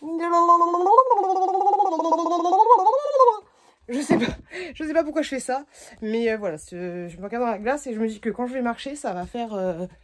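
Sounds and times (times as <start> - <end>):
woman making rough wavering noise: 0.0 - 3.5.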